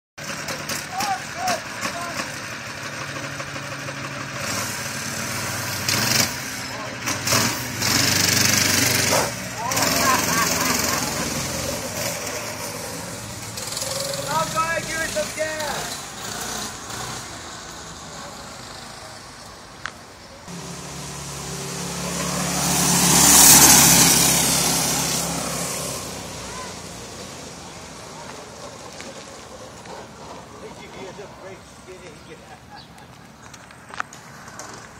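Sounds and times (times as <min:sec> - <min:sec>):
small engine revving: 0:00.2 - 0:19.2, 0:20.5 - 0:31.2
small engine driving past: 0:01.5 - 0:19.3, 0:20.5 - 0:31.6.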